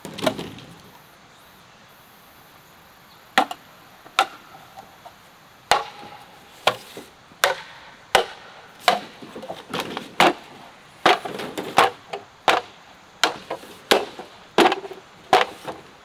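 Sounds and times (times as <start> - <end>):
bamboo poles knocking together: 0.0 - 0.6, 3.4 - 16.0
machete striking bamboo: 3.4 - 4.6, 5.7 - 15.8.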